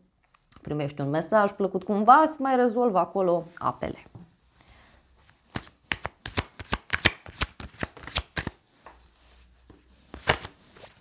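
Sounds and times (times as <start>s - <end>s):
cards shuffling: 5.2s - 8.9s, 9.7s - 11.0s.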